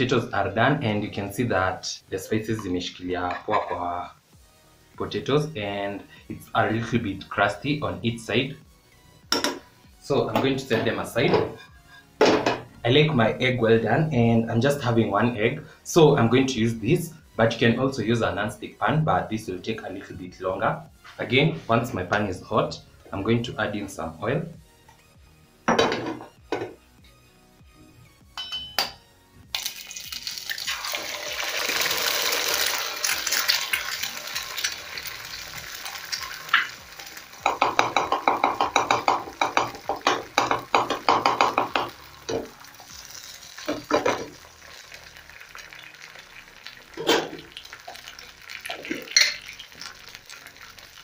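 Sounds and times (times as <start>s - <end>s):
egg sizzling in frying pan: 29.5s - 51.0s
utensils knocking: 37.4s - 42.5s.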